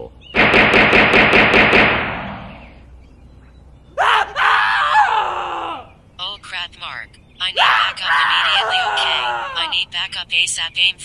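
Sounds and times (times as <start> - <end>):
rapid gunfire: 0.4 - 2.7.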